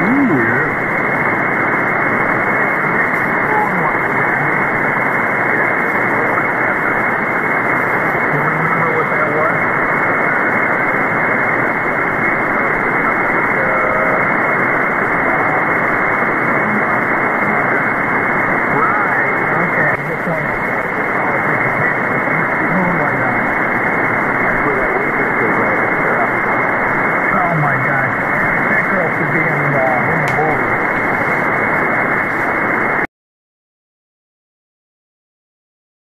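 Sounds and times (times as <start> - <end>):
faint radio voice: 0.0 - 0.8, 2.2 - 32.7
radio band noise hiss: 0.0 - 33.1.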